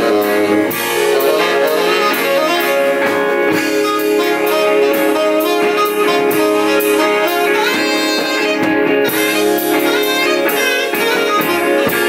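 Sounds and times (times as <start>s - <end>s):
live rock band playing: 0.0s - 12.0s
saxophone sustained notes: 0.0s - 12.0s
steady drum beat: 0.0s - 12.0s.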